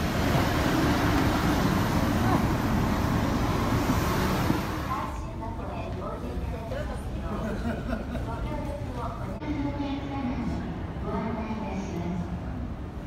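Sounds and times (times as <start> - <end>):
bus engine and road noise: 0.0 - 5.4
people talking: 4.8 - 12.5.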